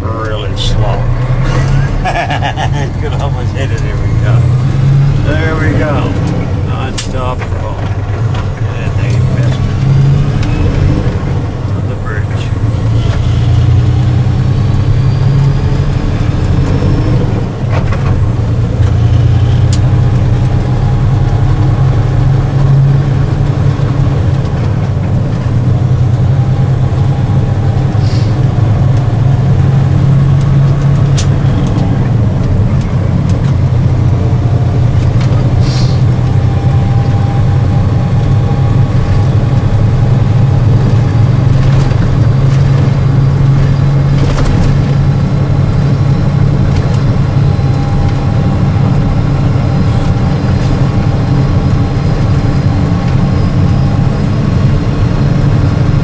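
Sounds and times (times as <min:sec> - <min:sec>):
low engine drone and road noise: 0:00.0 - 0:56.0.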